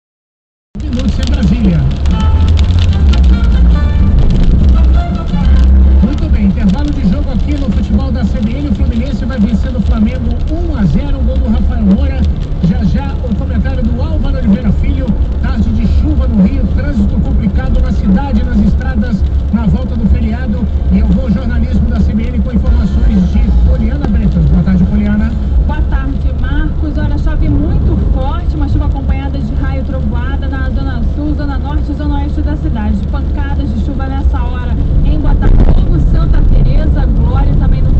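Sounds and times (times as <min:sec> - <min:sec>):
car engine and road rumble: 0:00.8 - 0:37.9
voice from car radio: 0:00.8 - 0:37.9
musical jingle on car radio: 0:01.3 - 0:06.8.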